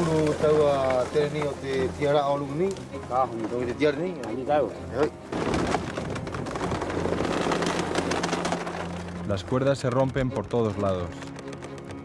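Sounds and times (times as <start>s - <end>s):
rushing crackling sea noise: 5.3s - 11.9s.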